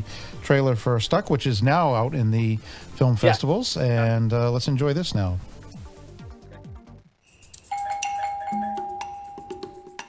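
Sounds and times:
doorbell chime ringing: 7.7s - 10.0s.

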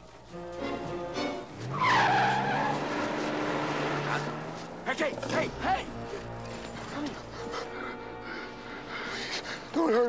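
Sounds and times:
film score: 0.0s - 10.0s
tyres squealing: 0.6s - 10.0s
car engine revving: 1.5s - 6.8s.

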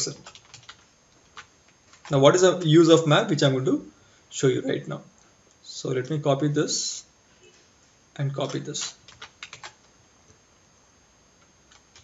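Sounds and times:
computer keyboard keystrokes: 0.0s - 2.7s, 8.8s - 9.8s, 11.7s - 12.0s.

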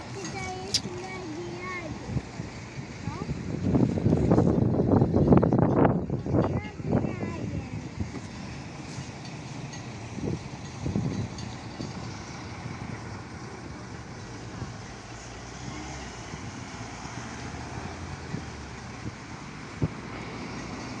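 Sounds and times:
voices: 0.0s - 2.2s
street traffic noise: 0.0s - 21.0s.

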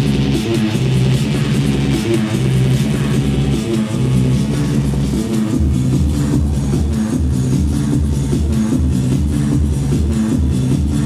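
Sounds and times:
techno over club sound system: 0.0s - 11.0s.

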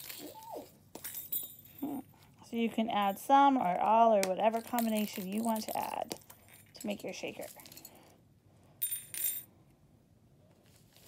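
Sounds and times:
beads and bells clinking in plastic: 0.0s - 8.1s.

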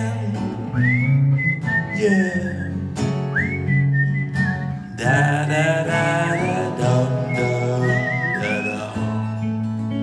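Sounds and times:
acoustic and electric guitars: 0.0s - 10.0s
person whistling a melody: 0.6s - 5.1s, 6.0s - 9.2s.

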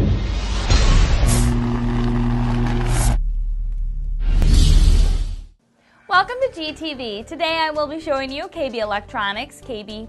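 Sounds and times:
low machine-like drone: 0.0s - 5.4s
whoosh: 0.0s - 5.6s.

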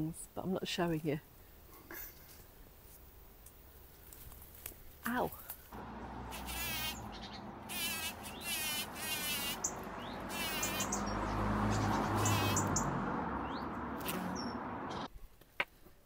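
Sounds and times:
bumblebee buzzing: 5.8s - 15.1s
high chirps and trills: 5.8s - 15.1s.

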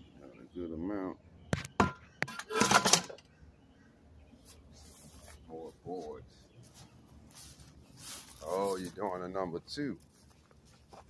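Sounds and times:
scrap metal clanking in a tub: 2.3s - 3.2s.

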